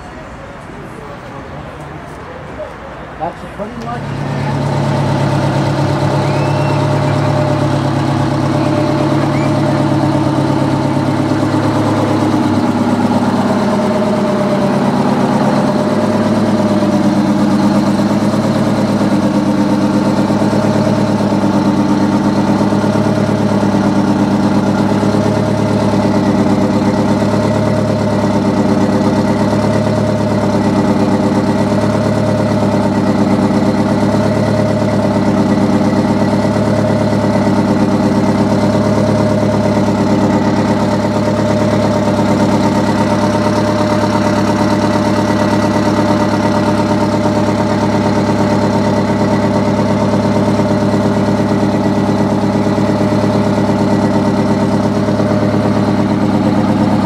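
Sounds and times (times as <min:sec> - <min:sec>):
diesel engine idling: 0:00.0 - 0:57.0.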